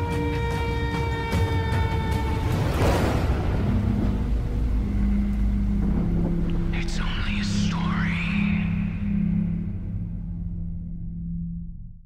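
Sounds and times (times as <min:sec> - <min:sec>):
deep rumbling drone: 0:00.6 - 0:12.0.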